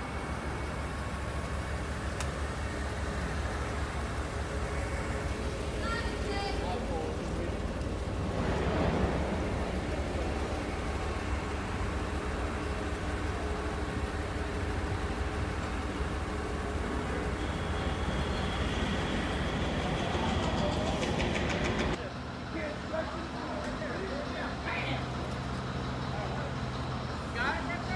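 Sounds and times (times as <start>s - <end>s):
forklift engine humming: 0.0s - 27.9s.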